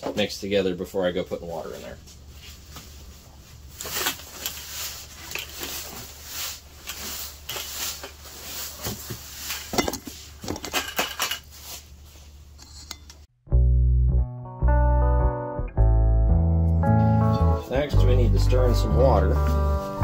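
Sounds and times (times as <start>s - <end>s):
sand rattling in plastic bucket: 3.9s - 10.4s
guitar music: 13.5s - 20.0s.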